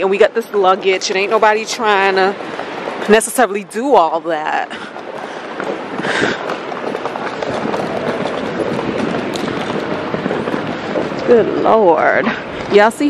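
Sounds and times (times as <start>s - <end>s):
suitcase wheels rattling on stone: 0.0s - 13.0s.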